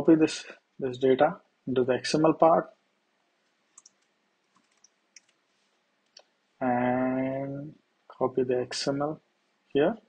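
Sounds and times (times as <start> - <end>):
faint computer clicks: 3.4 - 5.4.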